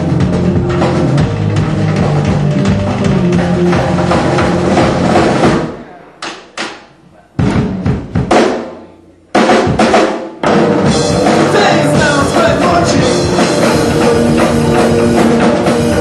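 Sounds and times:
electric guitar: 0.0 - 5.8, 10.5 - 16.0
drum kit: 0.0 - 16.0.

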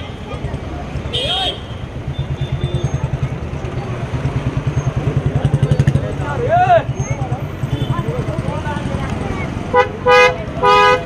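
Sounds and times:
vehicle engine throbbing: 1.8 - 10.6.

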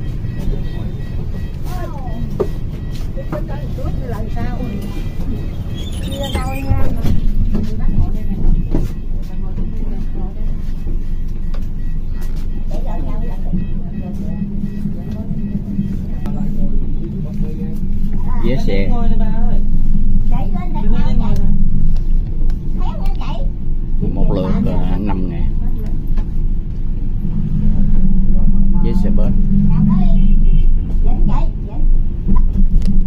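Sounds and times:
faint voices: 0.0 - 21.8
bus engine and road drone: 0.0 - 33.0.

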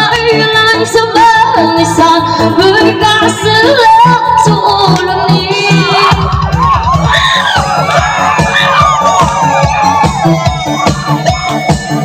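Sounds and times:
electronic dance beat over pa: 2.9 - 12.0
crowd cheering and shouting: 3.2 - 12.0.

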